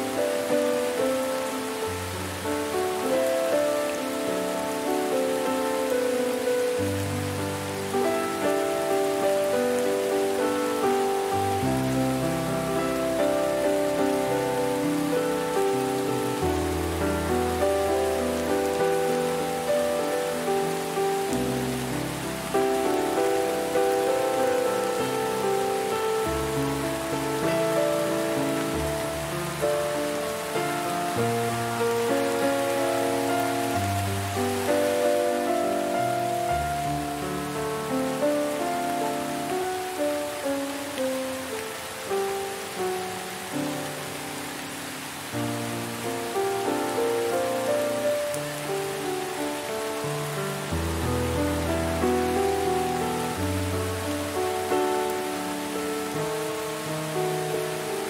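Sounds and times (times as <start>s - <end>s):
slow calm music: 0.0s - 58.0s
steady rain: 0.0s - 58.0s.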